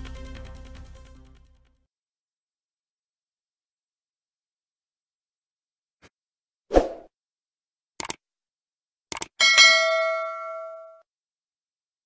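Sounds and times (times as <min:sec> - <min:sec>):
quick clicks: 0:08.0 - 0:08.2, 0:09.1 - 0:09.4
bright bell chime: 0:09.4 - 0:11.0.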